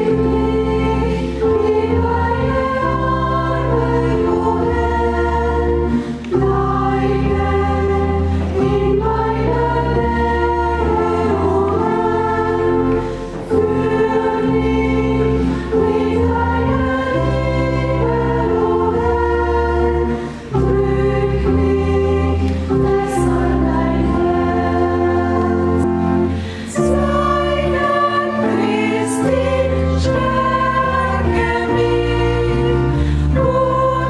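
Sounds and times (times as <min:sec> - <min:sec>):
choir singing a hymn: 0:00.0 - 0:34.0.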